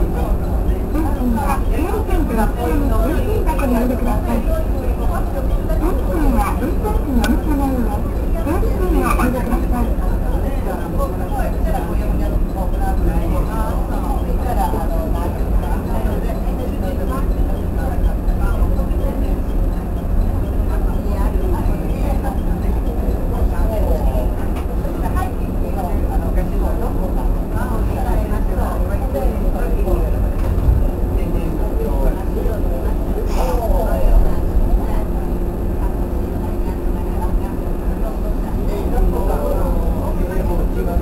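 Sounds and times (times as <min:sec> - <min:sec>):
electric train cab hum: 0:00.0 - 0:41.0
people talking: 0:00.0 - 0:41.0.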